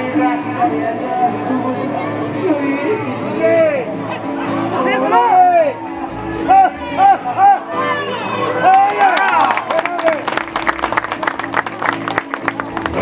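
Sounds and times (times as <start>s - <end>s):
crowd noise: 0.0s - 13.0s
music: 0.0s - 13.0s.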